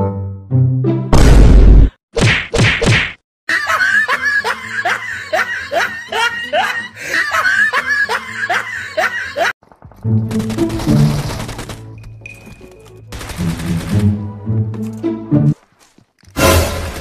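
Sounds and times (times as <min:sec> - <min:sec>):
loud whack: 0:01.1 - 0:03.2.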